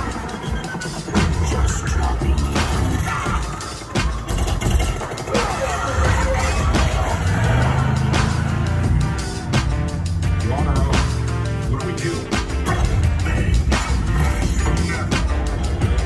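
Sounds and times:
action music: 0.0 - 16.0
deep rumble: 6.0 - 11.9.

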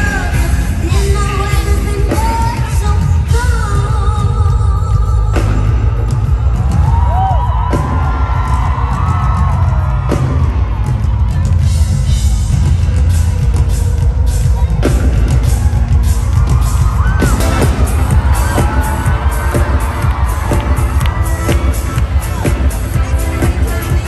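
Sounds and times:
woman singing with vibrato: 0.0 - 6.2
live band playing: 0.0 - 24.0.

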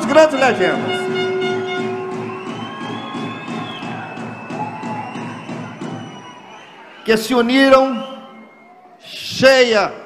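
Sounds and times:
cheering: 1.0 - 9.2
audience applause: 1.2 - 7.0.

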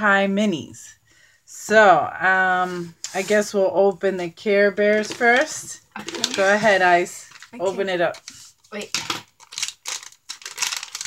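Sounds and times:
foil bag crinkling: 5.3 - 7.9, 8.8 - 11.0.

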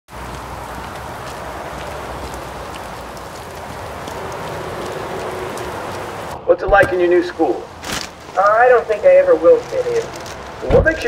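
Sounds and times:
heavy rain on pavement: 0.1 - 11.0.

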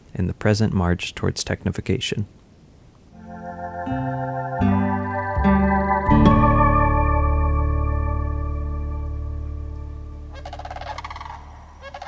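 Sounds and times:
guitar music: 3.2 - 10.7
bird rattling gobble-like call: 10.4 - 12.0.

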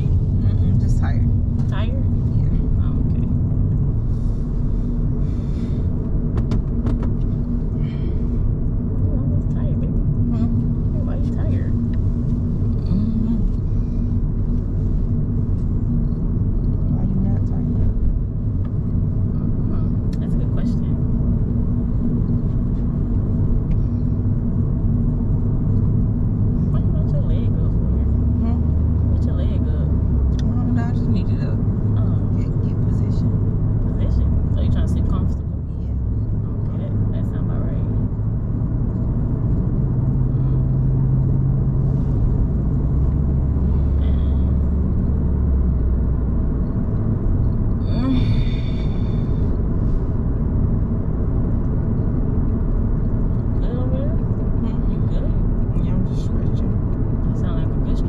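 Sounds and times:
car engine hum: 0.0 - 58.0
road rumble inside car: 0.0 - 58.0.

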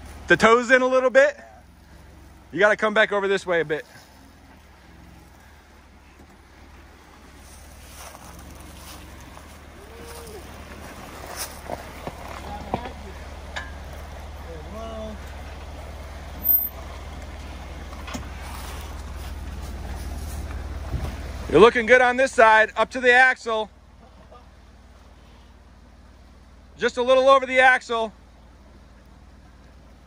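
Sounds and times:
car engine running low: 0.0 - 30.0
rushing water: 1.6 - 26.5.

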